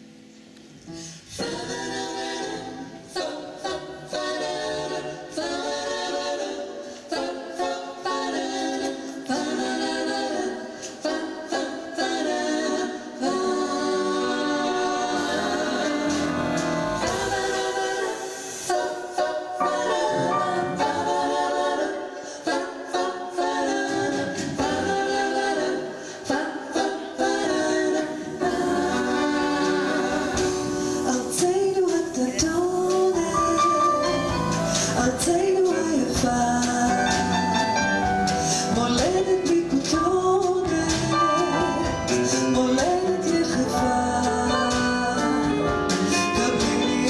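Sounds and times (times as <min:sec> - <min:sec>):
group singing in close harmony: 0:01.0 - 0:47.0.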